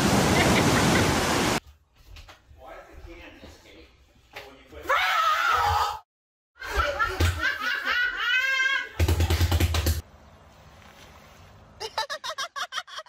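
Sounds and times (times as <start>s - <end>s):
people laughing loudly: 6.6s - 9.0s, 11.8s - 13.0s.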